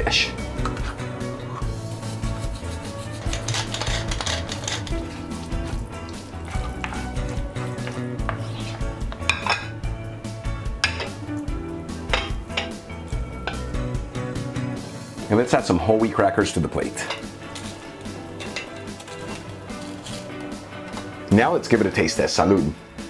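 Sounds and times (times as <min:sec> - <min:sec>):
background music: 0:00.0 - 0:23.0
wooden spoon scraping a pan: 0:00.6 - 0:09.8, 0:17.0 - 0:21.2
spoon knocking on pan: 0:07.8 - 0:09.7, 0:12.1 - 0:12.8.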